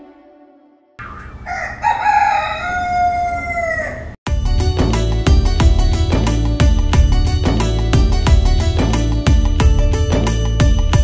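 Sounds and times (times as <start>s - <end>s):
rooster crowing: 1.0s - 4.2s
music with a steady beat: 4.3s - 11.0s.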